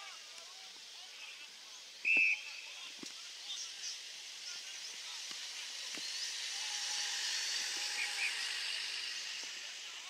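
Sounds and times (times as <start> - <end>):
steady outdoor hiss: 0.0 - 10.0
faint distant calls: 5.6 - 9.8.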